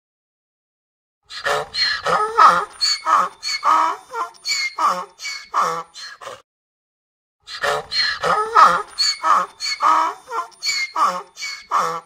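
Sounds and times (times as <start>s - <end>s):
donkey braying: 1.3s - 6.4s, 7.5s - 12.0s.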